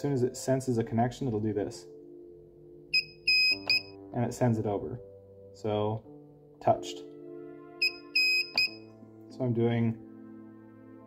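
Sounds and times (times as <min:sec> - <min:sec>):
background music: 0:00.0 - 0:11.0
spot welder beeping: 0:03.0 - 0:03.9, 0:07.8 - 0:08.8.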